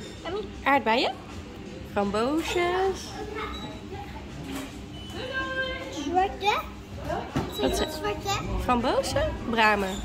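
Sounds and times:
young child talking: 6.2s - 6.8s.

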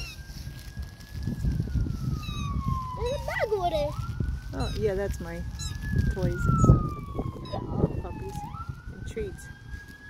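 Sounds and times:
low rumbling microphone noise: 0.0s - 10.0s
siren wailing: 0.0s - 10.0s.

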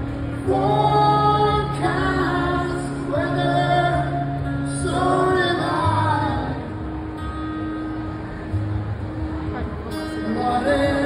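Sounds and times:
acoustic guitar strumming: 0.0s - 11.0s
person singing: 0.4s - 6.6s, 10.2s - 11.0s.

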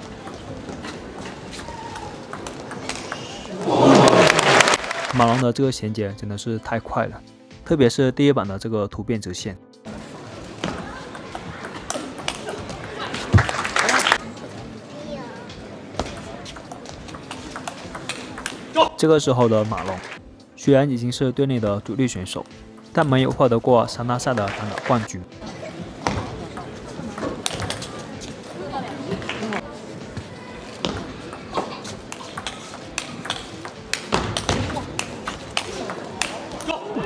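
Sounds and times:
voices talking in a hall: 0.0s - 7.6s, 9.8s - 37.0s
table tennis ball clicking: 2.0s - 3.5s, 11.1s - 12.6s, 16.0s - 18.6s, 32.1s - 36.7s.

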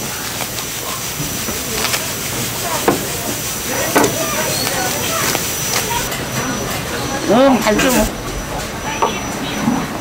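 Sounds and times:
steady hiss: 0.0s - 9.6s
background chatter of voices: 0.0s - 10.0s.

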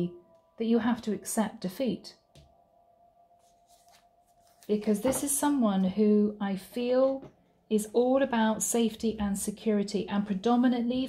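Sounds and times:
faint steady tone: 0.0s - 11.0s
card deck rustling: 3.4s - 4.7s.

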